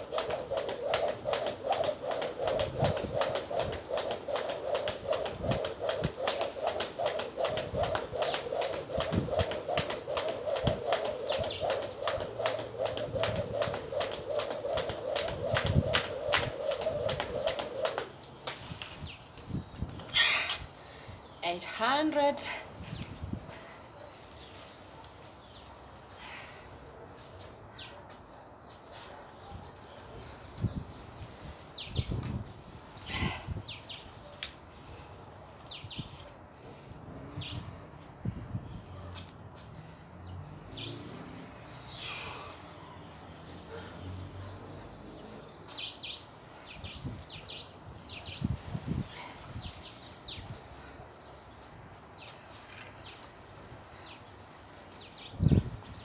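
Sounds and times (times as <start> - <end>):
small birds chirping: 10.1 - 15.3.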